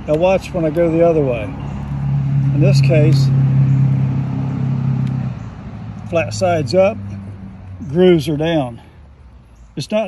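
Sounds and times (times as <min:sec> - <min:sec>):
vehicle engine humming: 0:00.0 - 0:09.7.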